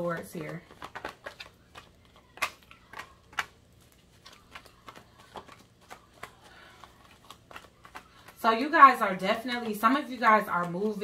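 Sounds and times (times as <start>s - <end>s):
cards shuffled by hand: 0.1s - 8.7s.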